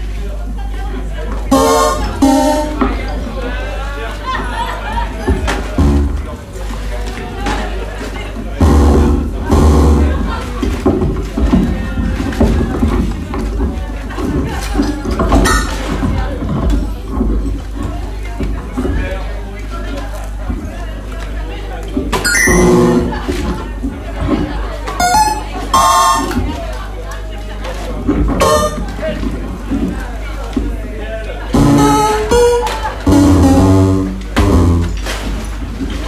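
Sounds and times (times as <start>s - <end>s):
loud electronic buzzing blasts: 5.8s - 6.3s, 8.6s - 10.2s, 33.1s - 35.0s.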